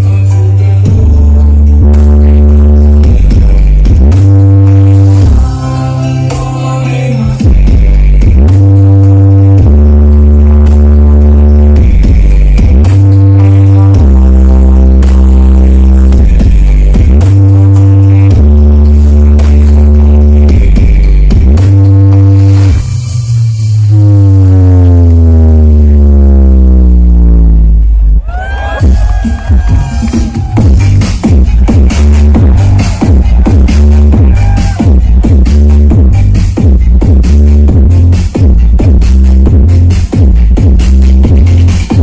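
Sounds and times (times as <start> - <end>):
loud electronic dance music: 0.0 - 42.0.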